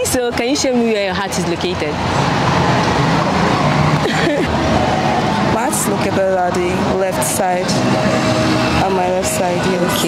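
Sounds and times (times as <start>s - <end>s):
engine hum: 0.0s - 10.0s
road noise: 0.0s - 10.0s.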